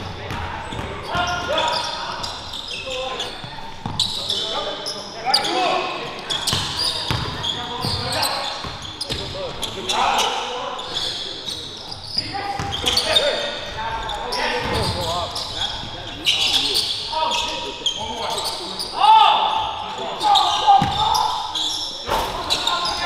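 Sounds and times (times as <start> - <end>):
sneakers squeaking: 0.0 - 23.0
ball bouncing on wooden court: 6.5 - 8.0, 20.8 - 21.0.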